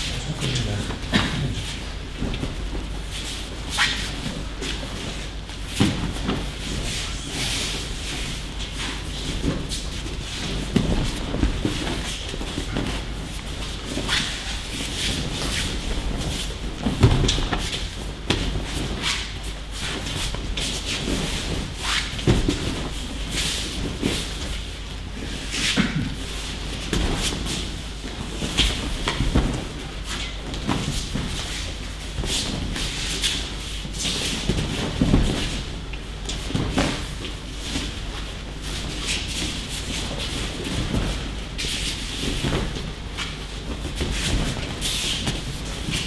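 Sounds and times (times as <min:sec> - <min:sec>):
feet shuffling: 0:00.0 - 0:46.0
thuds of bodies on mats: 0:00.8 - 0:46.0.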